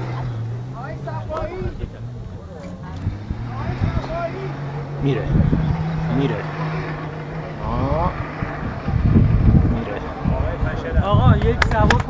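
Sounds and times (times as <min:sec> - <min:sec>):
distant engine under load: 0:00.0 - 0:12.0
onlookers talking: 0:00.0 - 0:12.0.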